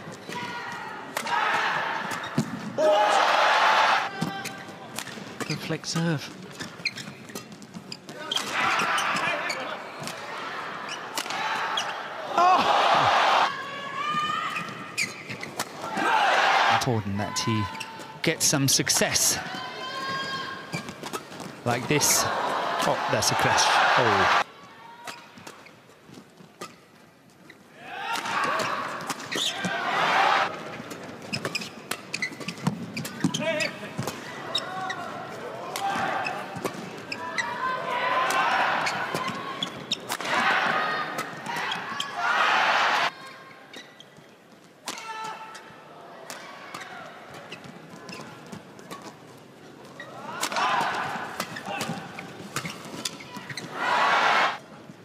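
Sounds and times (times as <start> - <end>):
crowd shouting and cheering: 0.0 - 4.5, 8.4 - 14.7, 15.8 - 20.7, 21.7 - 25.1, 27.8 - 30.6, 34.4 - 39.6, 40.2 - 43.3, 50.1 - 52.2, 53.6 - 54.6.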